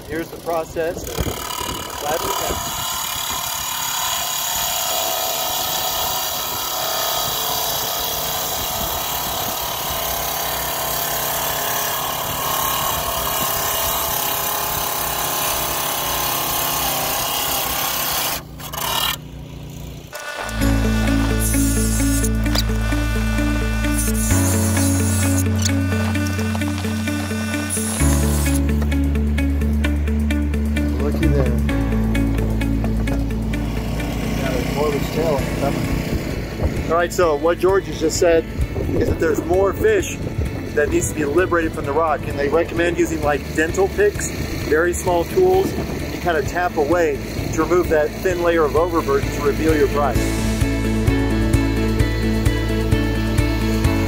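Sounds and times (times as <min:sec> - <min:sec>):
tile saw grinding whine: 0:00.0 - 0:54.0
background music with bass line: 0:20.4 - 0:54.0.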